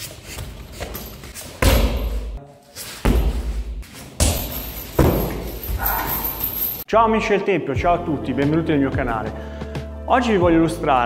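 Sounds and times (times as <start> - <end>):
kicks on heavy punching bag: 1.6 - 2.4, 3.0 - 5.8.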